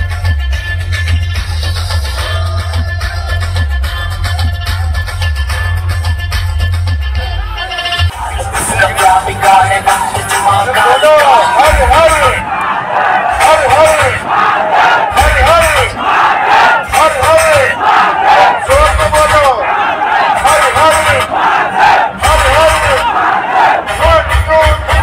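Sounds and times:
shouted chant-like vocals: 0:08.1 - 0:25.0.

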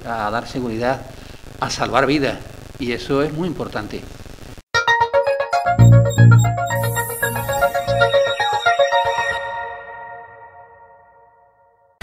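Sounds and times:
electronic jingle closing chord: 0:05.0 - 0:11.6.

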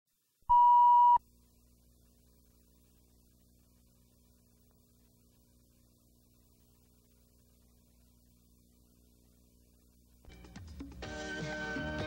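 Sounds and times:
faint low hum: 0:00.2 - 0:10.3
electronic test-tone beep: 0:00.5 - 0:01.2.

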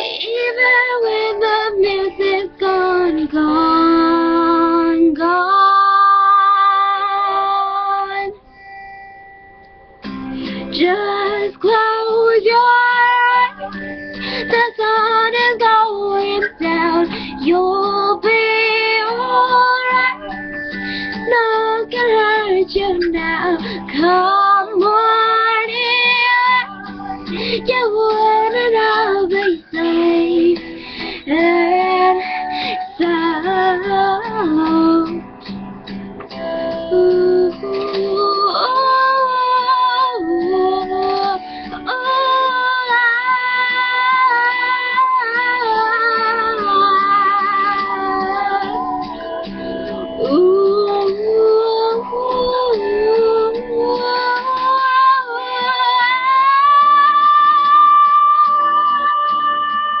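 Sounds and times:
girl singing wordless notes: 0:00.0 - 0:08.7, 0:09.7 - 1:00.0
recorded pop song: 0:00.0 - 1:00.0.

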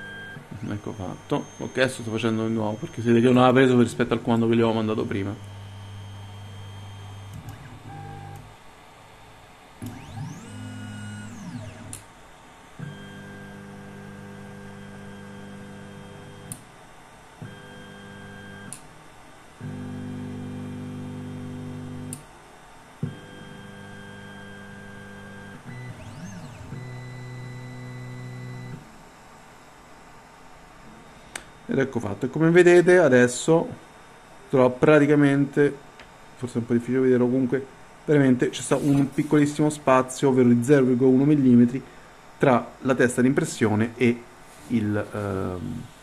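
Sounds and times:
stepper motors whining: 0:00.0 - 0:08.5, 0:09.8 - 0:12.0.

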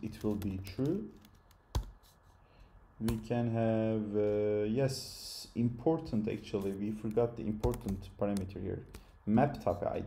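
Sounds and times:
computer keyboard typing: 0:07.1 - 0:08.5.

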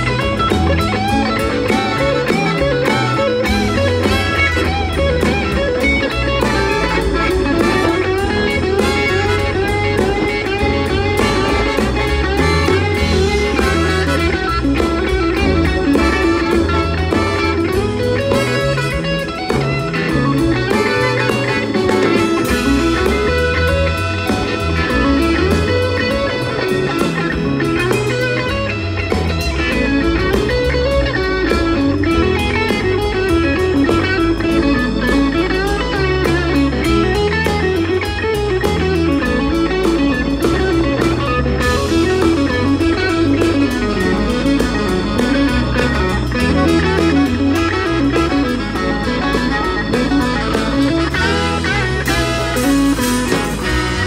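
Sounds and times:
electric guitar lead line: 0:00.0 - 0:54.0
live bluesy rock band: 0:00.0 - 0:54.0.

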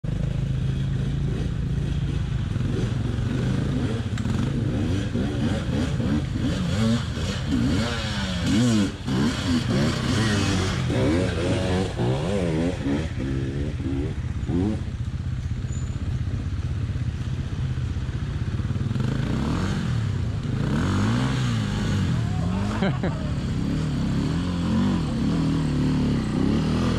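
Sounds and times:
dirt bike engines revving: 0:00.0 - 0:26.9.

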